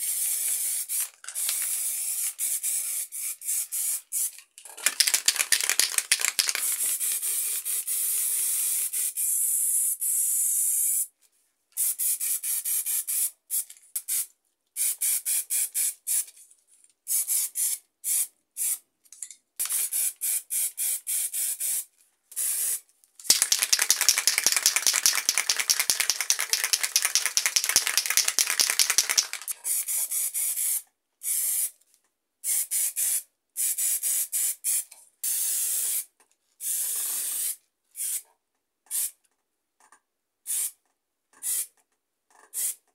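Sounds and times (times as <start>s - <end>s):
spray paint can hissing: 0.6s - 7.1s, 23.3s - 29.9s.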